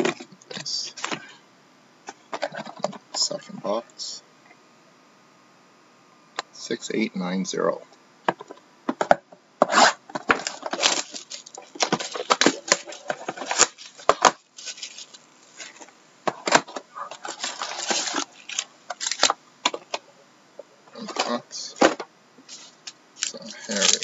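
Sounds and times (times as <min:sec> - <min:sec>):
foil packs handled: 0:10.2 - 0:15.9, 0:16.6 - 0:19.4, 0:22.5 - 0:24.0
plastic shrink wrap crinkling: 0:10.2 - 0:16.0, 0:17.1 - 0:19.4, 0:22.5 - 0:24.0.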